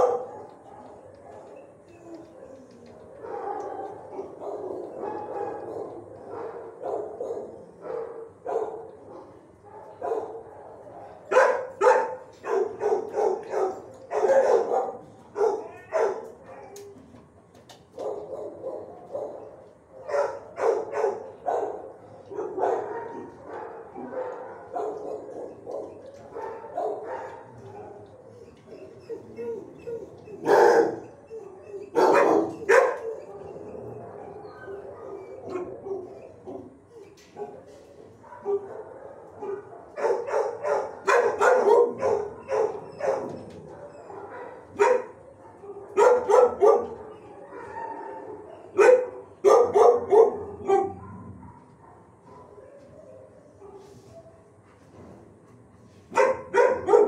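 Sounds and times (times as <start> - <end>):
dogs barking: 0.0 - 16.9, 17.9 - 54.6, 56.1 - 57.0.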